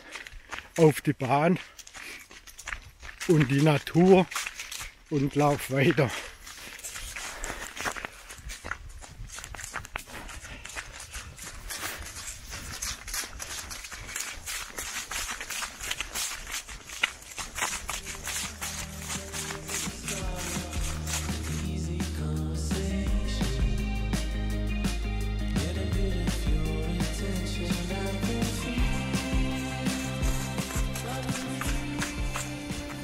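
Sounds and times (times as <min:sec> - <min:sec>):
running footsteps on leaves: 0:00.0 - 0:23.2, 0:26.3 - 0:33.0
background music: 0:18.2 - 0:33.0.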